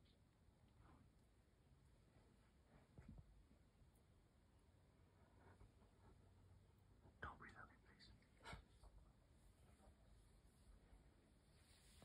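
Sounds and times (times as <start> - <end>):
faint whispering: 7.0 - 9.0.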